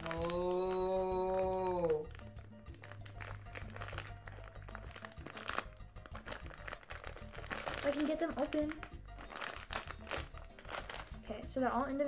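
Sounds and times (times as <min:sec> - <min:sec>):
plastic wrapper crinkling: 0:00.0 - 0:11.4.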